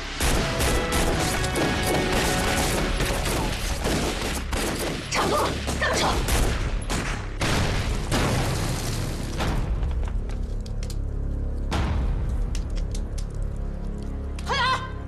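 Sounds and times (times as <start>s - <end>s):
film music score: 0.0s - 15.0s.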